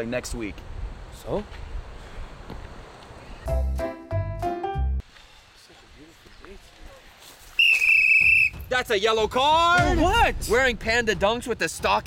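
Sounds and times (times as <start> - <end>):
referee's whistle blast: 7.6 - 8.7.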